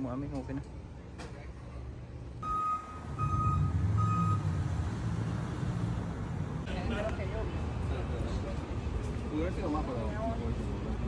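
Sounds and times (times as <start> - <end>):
truck reversing alarm beeping: 2.4 - 4.8.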